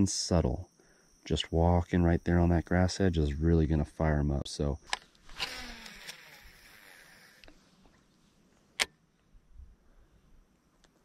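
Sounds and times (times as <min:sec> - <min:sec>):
fishing reel spool whirring: 0:05.2 - 0:07.6.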